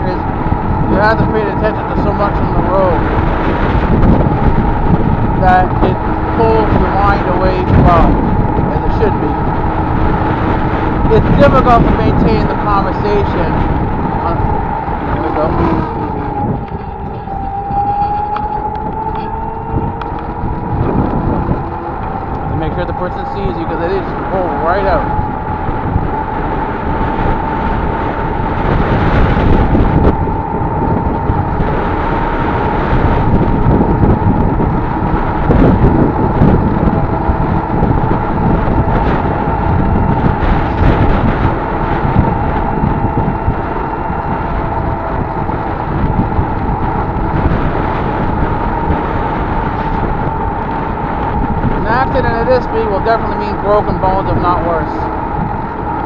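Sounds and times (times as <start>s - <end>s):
steady whine: 0.0s - 56.0s
vehicle road noise: 0.0s - 56.0s
wind buffeting microphone: 0.0s - 56.0s.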